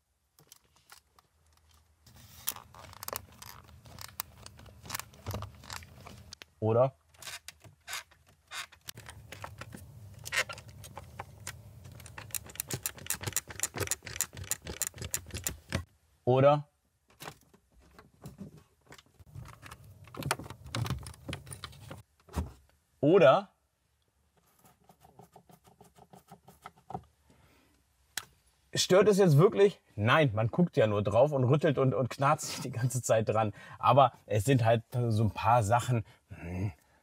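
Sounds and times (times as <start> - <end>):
plastic trim clicking and creaking: 2.5 - 6.4, 7.1 - 15.9.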